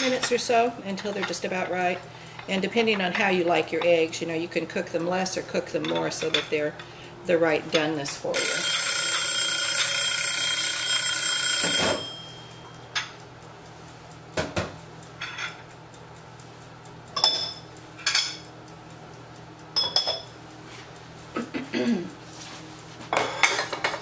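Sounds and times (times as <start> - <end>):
kitchen timer ringing: 7.8 - 13.3, 17.0 - 20.4
dishes and utensils clinking: 19.8 - 20.3, 23.2 - 24.0.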